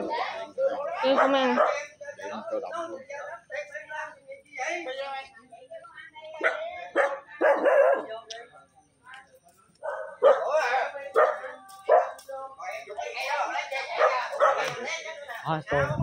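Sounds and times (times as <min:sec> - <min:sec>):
dog barking: 0:01.0 - 0:01.9, 0:06.4 - 0:08.2, 0:09.8 - 0:12.2, 0:13.9 - 0:14.8.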